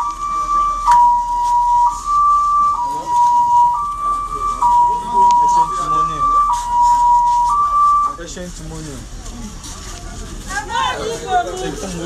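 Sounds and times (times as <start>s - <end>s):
electronic two-tone alarm: 0.0s - 8.2s.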